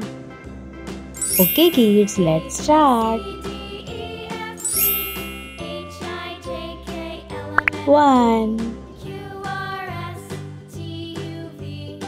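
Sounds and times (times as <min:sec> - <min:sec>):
children's background music: 0:00.0 - 0:12.0
high shimmer: 0:01.2 - 0:03.8, 0:04.4 - 0:06.6
bell-like chiming notes: 0:01.2 - 0:06.9.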